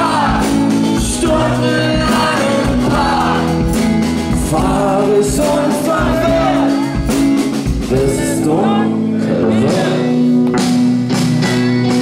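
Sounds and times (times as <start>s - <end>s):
man singing into a microphone: 0.0s - 6.9s, 7.8s - 10.4s
drum hits: 0.0s - 8.3s
rock band playing live: 0.0s - 12.0s.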